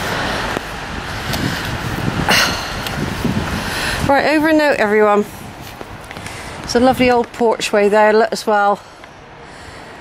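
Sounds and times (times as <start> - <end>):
low rumble on microphone: 0.0 - 4.5
road traffic: 0.0 - 10.0.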